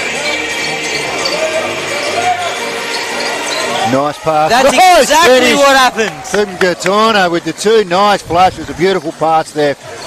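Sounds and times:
voices of players and crowd: 0.0s - 10.0s.

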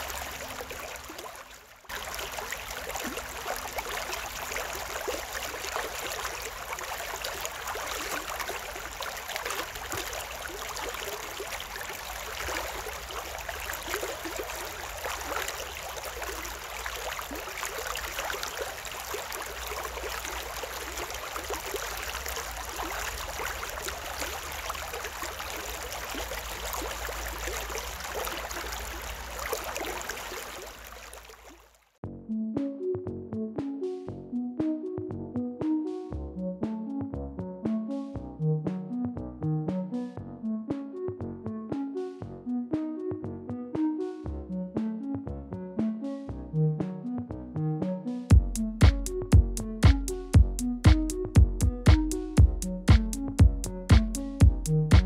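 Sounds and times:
stream water trickling: 0.0s - 32.0s.

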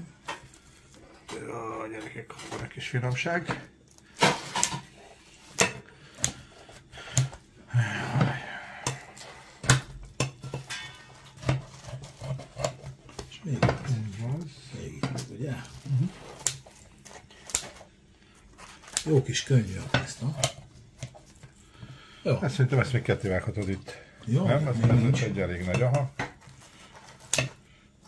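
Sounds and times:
scissors snipping pizza crust: 4.0s - 7.4s, 15.2s - 17.9s, 18.6s - 21.6s, 24.5s - 27.6s.

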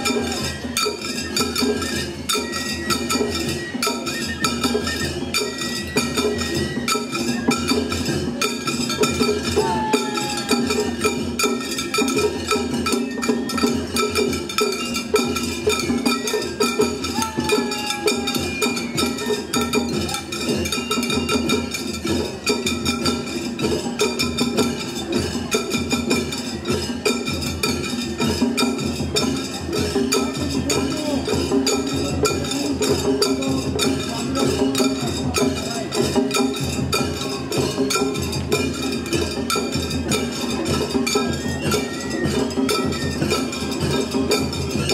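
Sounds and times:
taiko drums beating: 0.0s - 44.9s.

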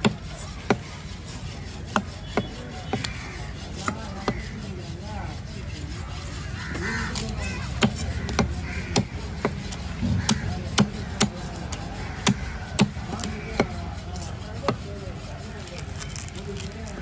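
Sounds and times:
cleaver knocking on chopping block: 7.8s - 11.4s, 12.2s - 13.8s.

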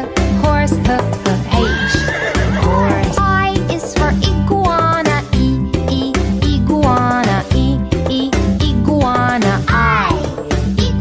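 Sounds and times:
upbeat children's music: 0.0s - 11.0s
horse whinnying: 1.5s - 3.2s.

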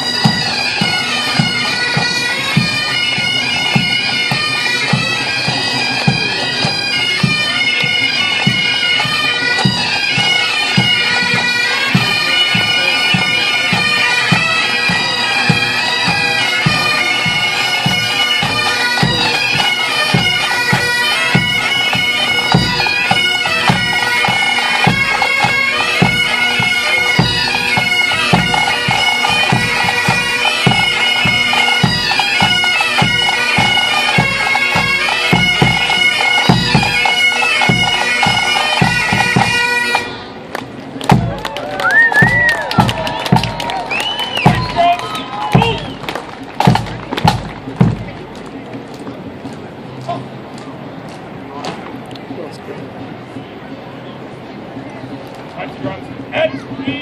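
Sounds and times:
bagpipes playing melody: 0.0s - 40.4s
bass and snare drums beat: 22.5s - 26.2s, 27.1s - 39.5s, 41.0s - 48.4s.

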